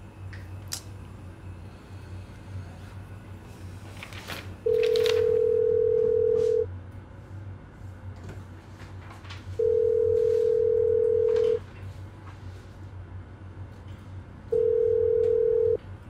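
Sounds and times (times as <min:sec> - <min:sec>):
phone ringback tone beeps: 0:04.7 - 0:06.7, 0:09.6 - 0:11.6, 0:14.6 - 0:15.8.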